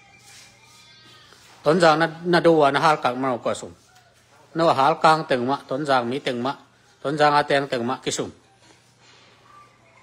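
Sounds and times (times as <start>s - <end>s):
man speaking: 1.6s - 3.8s, 4.5s - 8.4s.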